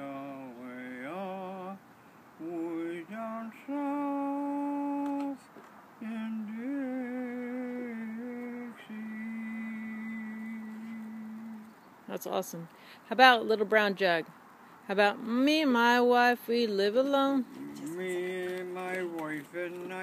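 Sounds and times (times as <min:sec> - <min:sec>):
elderly man humming: 0:02.4 - 0:11.7, 0:17.4 - 0:20.0.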